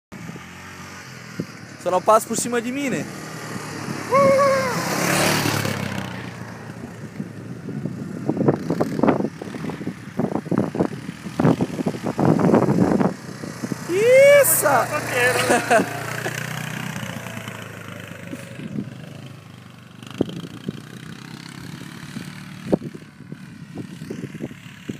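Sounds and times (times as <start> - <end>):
quad bike engine running: 0.2 - 24.9
people calling out and whooping: 4.0 - 5.0, 13.8 - 16.1
people laughing: 14.2 - 16.5.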